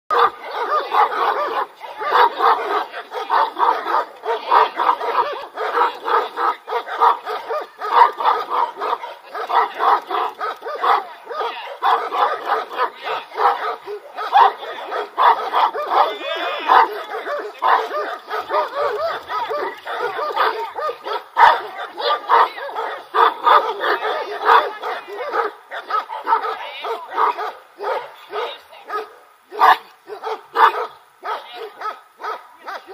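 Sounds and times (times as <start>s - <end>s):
dog barking deeply: 0.1s - 32.9s.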